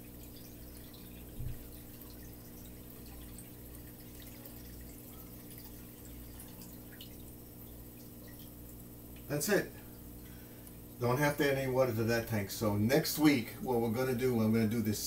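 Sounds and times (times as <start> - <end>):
water dripping into aquarium: 0.0 - 11.0
steady low hum: 0.0 - 15.0
soft thump: 1.4 - 1.7.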